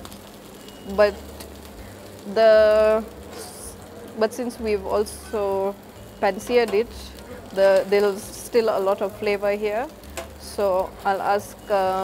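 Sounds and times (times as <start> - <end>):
frying pan hissing: 0.0 - 12.0.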